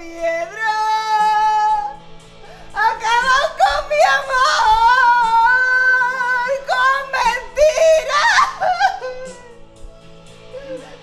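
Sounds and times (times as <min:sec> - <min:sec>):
woman wailing: 0:02.8 - 0:09.6.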